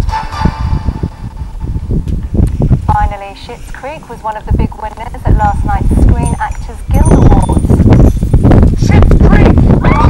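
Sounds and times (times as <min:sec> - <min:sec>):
people screaming and cheering: 0:09.8 - 0:10.0.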